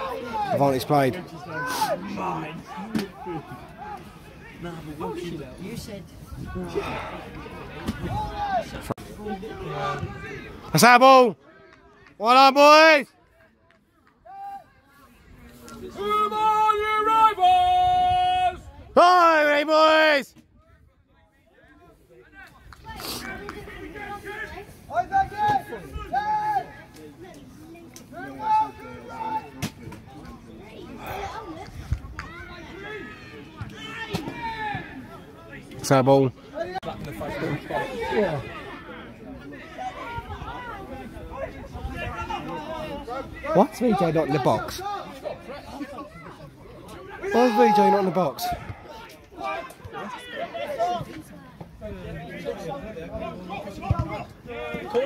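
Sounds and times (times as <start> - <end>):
spectators talking and calling out: 0.0 - 55.0
faint background chatter: 13.1 - 19.0, 20.2 - 55.0.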